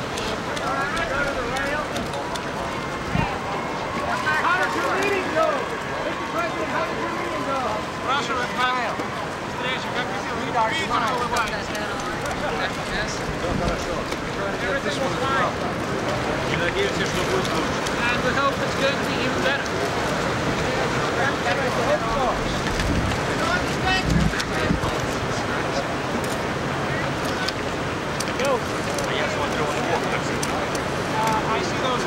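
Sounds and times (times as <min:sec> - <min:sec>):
indistinct chatter of voices: 0:00.0 - 0:32.0
wind buffeting microphone: 0:22.1 - 0:25.2.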